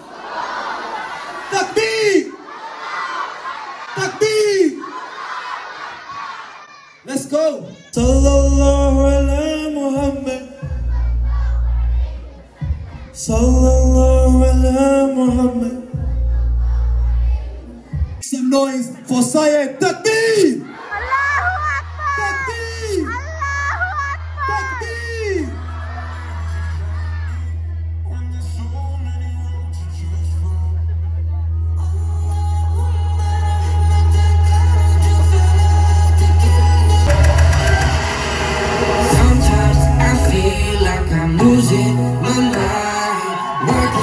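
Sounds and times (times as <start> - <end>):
audience calling back together: 0.0 - 8.0
man's amplified voice calling out: 1.5 - 2.4, 4.0 - 4.8, 7.0 - 10.4, 18.2 - 20.7, 22.0 - 25.6
voices singing a short phrase: 8.0 - 18.2.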